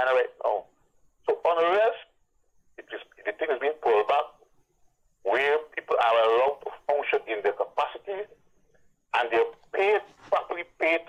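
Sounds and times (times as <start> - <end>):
person talking over telephone: 0.0 - 0.7, 1.3 - 2.1, 2.8 - 4.4, 5.2 - 8.4, 9.1 - 11.0.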